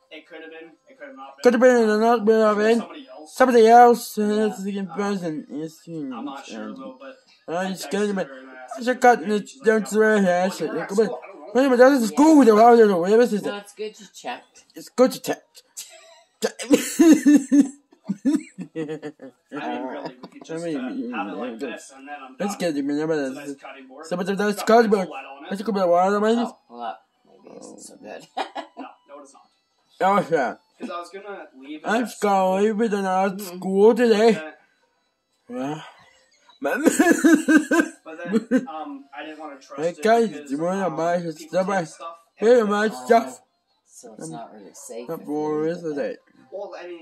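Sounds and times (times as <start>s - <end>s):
man laughing: 16.4s - 20.6s, 36.6s - 38.7s.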